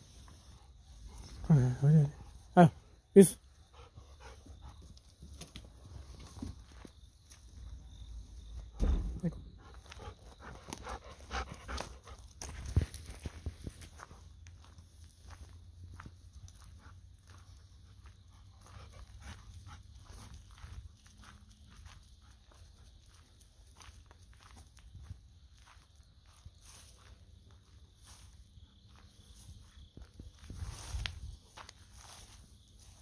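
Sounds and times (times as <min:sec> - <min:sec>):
insects chirping: 0:00.0 - 0:33.0
dog panting: 0:03.4 - 0:05.0, 0:09.6 - 0:12.4, 0:18.3 - 0:20.6
footsteps on gravel: 0:09.7 - 0:33.0.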